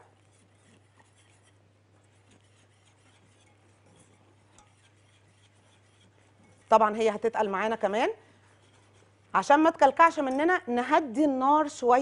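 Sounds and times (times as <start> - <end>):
whisk scraping steel pot: 0.0 - 10.5.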